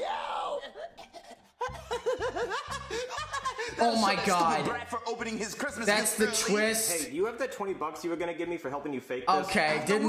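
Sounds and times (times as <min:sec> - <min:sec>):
man laughing: 0:01.6 - 0:04.8
music: 0:01.6 - 0:10.0.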